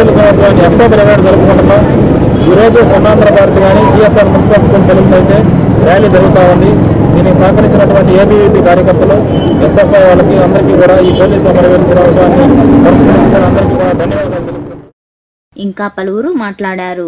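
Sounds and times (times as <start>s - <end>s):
man talking into a microphone: 0.0s - 14.7s.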